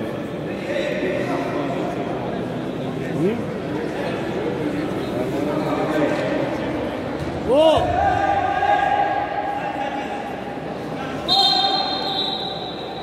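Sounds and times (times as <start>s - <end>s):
high-pitched whistle: 11.3s - 13.0s.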